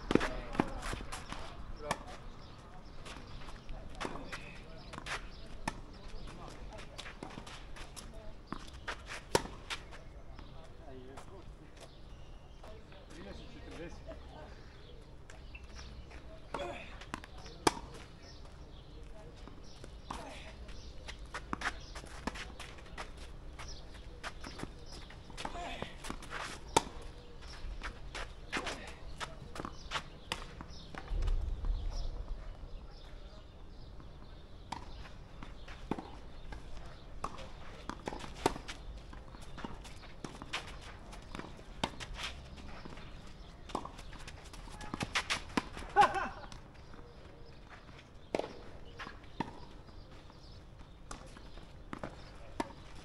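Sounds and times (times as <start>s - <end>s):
tennis ball bouncing: 8.5s - 9.8s, 34.0s - 47.0s, 48.2s - 49.8s.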